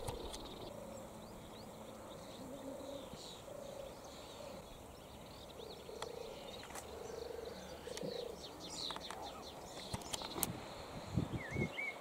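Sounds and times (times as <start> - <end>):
lower repeated bird notes: 0.0 - 12.0
warbler singing: 0.0 - 12.0
sharp clicks: 8.8 - 10.6.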